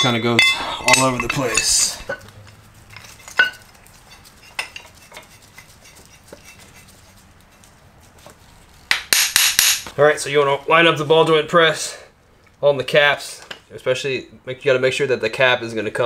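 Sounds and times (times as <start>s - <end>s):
metal clatter: 0.0s - 6.9s
metal clinks and knocks: 0.0s - 6.9s.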